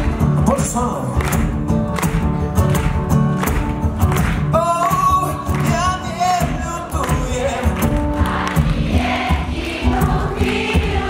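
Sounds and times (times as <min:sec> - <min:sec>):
acoustic guitar: 0:00.0 - 0:11.0
steady drum beat: 0:00.0 - 0:11.0.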